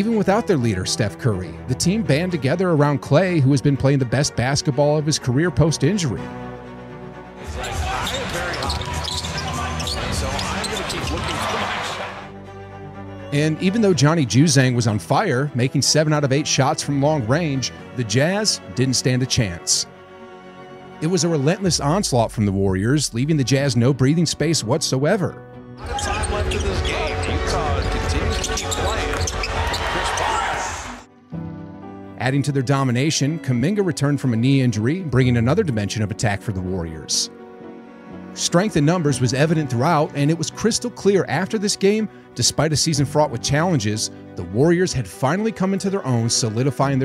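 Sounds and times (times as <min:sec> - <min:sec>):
background music: 0:00.0 - 0:47.0
arena crowd noise: 0:07.5 - 0:12.3, 0:25.8 - 0:31.0
arena crowd rumble: 0:07.6 - 0:12.3.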